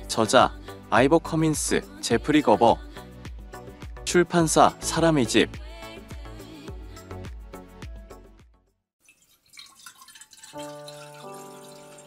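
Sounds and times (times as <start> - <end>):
music: 0.0 - 8.9, 10.6 - 12.0
water dripping and trickling: 9.0 - 12.0.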